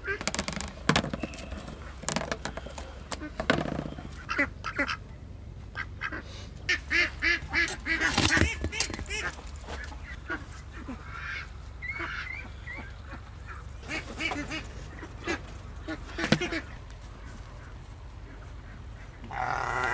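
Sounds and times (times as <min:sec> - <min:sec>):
ducks quacking: 0:01.5 - 0:05.0, 0:05.7 - 0:19.9.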